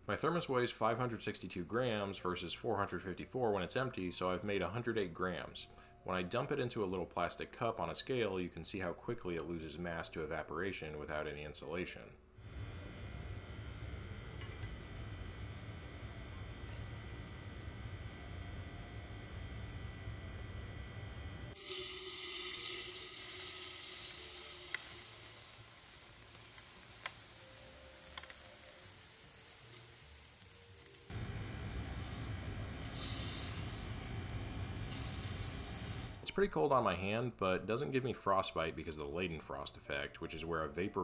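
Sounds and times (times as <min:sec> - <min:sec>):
liquid nitrogen hissing: 0:21.5 - 0:36.2.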